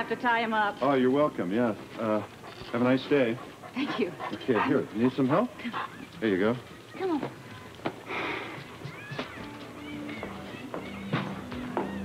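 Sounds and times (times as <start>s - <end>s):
soft background music: 6.2s - 12.0s.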